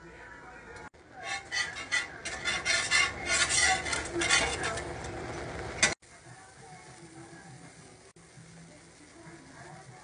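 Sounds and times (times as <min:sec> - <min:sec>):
metal spatula scraping on griddle: 0:01.1 - 0:06.0.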